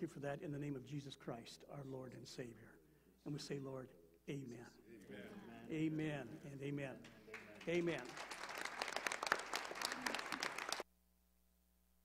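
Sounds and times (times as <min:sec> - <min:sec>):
congregation applauding: 0:07.0 - 0:10.9.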